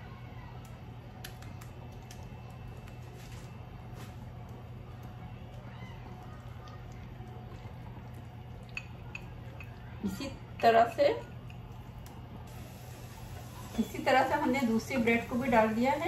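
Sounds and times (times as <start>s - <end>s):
steady low hum: 0.0s - 16.0s
batter squelches: 0.3s - 10.6s.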